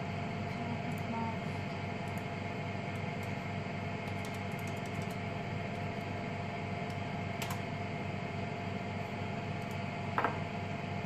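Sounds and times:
lab equipment and fans humming: 0:00.0 - 0:11.0.

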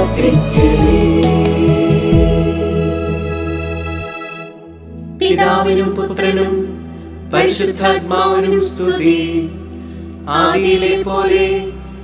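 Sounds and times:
background music drone: 0:00.0 - 0:12.0
voices chanting a prayer: 0:05.2 - 0:12.0.

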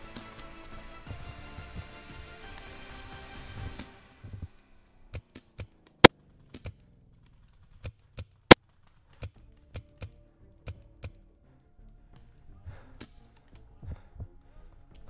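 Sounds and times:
background music: 0:00.0 - 0:04.7.

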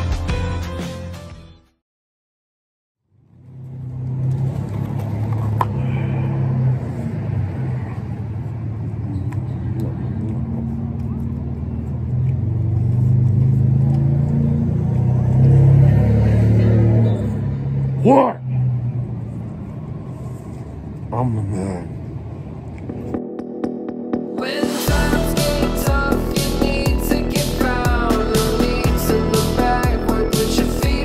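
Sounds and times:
vehicle engine rumble: 0:03.1 - 0:31.0.

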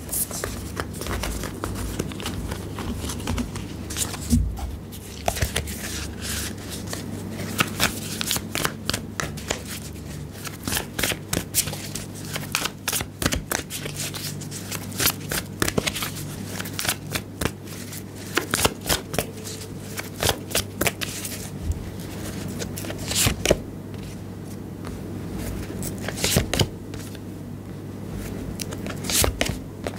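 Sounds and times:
cards being shuffled: 0:00.0 - 0:27.2, 0:28.2 - 0:29.9.

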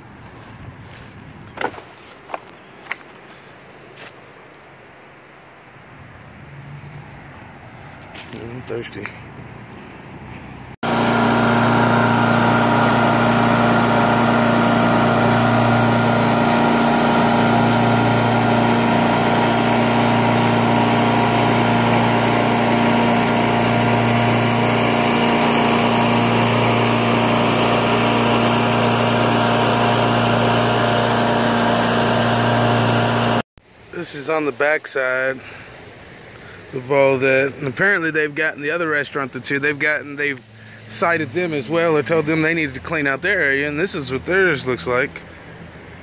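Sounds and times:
lawn mower engine cutting grass: 0:10.8 - 0:33.5.

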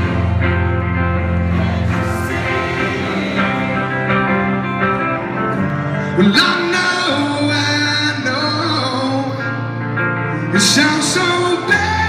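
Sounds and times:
guitar chords ringing: 0:00.0 - 0:12.0
rock band playing live: 0:00.0 - 0:12.0.

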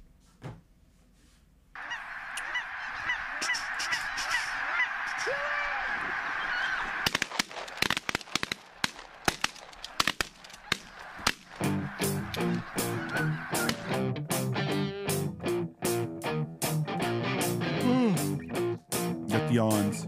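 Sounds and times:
sharp cracks: 0:01.8 - 0:14.0
geese honking: 0:01.8 - 0:14.8
music: 0:11.6 - 0:20.0.

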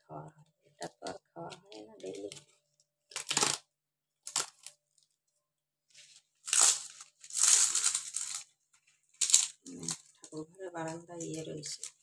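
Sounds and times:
leaf rustling and crackling: 0:05.9 - 0:08.5, 0:09.1 - 0:10.4.

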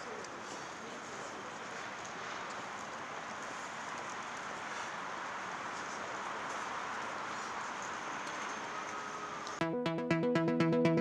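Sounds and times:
city street background hiss: 0:00.0 - 0:09.6.

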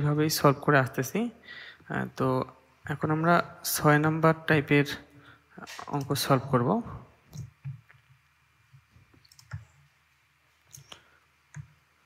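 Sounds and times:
room hiss: 0:00.0 - 0:12.0
computer mouse clicks: 0:09.0 - 0:09.9, 0:10.6 - 0:11.8.

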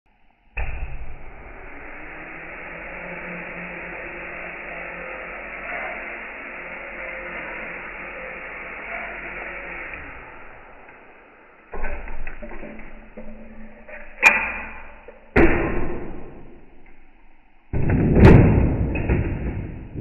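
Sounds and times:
quadcopter motors whirring: 0:01.4 - 0:11.8.

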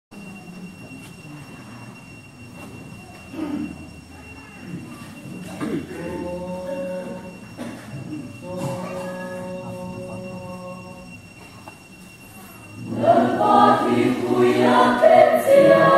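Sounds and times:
choir shuffling and murmuring: 0:00.2 - 0:15.9.

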